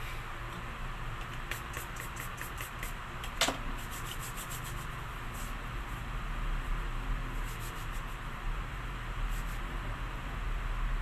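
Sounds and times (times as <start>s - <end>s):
hands rubbing together: 1.3s - 3.0s, 3.8s - 5.5s, 7.4s - 8.2s.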